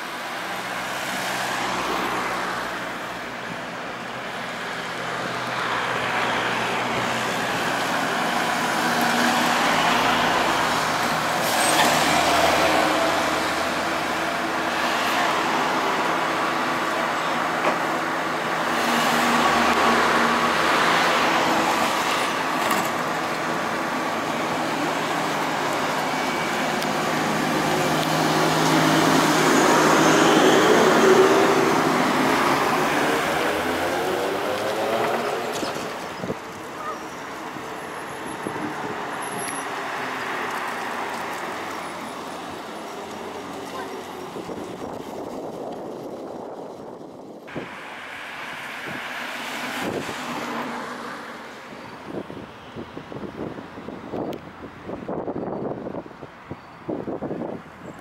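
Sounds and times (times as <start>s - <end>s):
trolleybus running: 0.0s - 52.2s
passing traffic: 0.0s - 58.0s.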